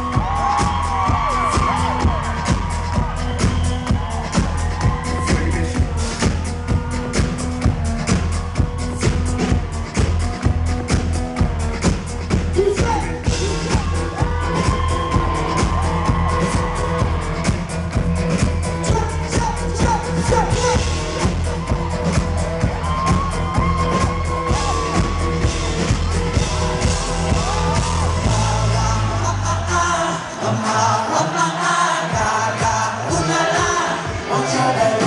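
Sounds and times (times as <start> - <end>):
pop band playing: 0.0 - 35.0
person singing: 23.7 - 35.0.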